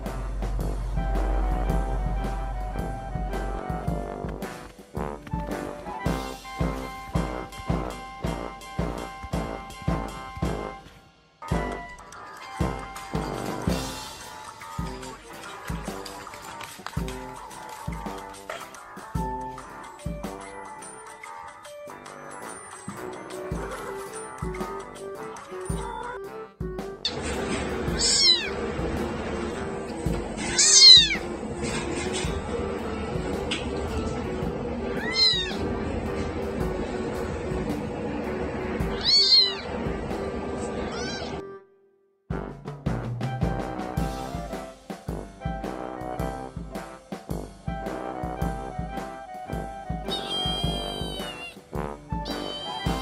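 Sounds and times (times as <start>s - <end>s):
background music: 0.0s - 53.0s
kitten meowing: 28.0s - 28.6s, 30.5s - 31.2s, 34.9s - 35.6s, 38.9s - 39.7s, 40.8s - 41.4s, 50.1s - 51.6s, 52.2s - 53.0s.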